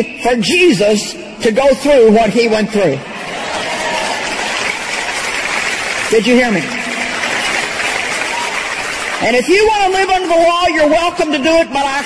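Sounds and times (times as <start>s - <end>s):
audience applause: 3.1s - 10.8s.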